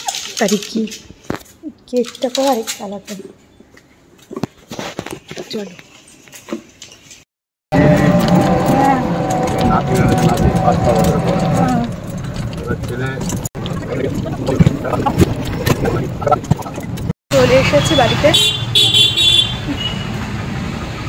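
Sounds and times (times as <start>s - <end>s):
street traffic noise: 0.0s - 21.0s
voices: 7.8s - 18.5s.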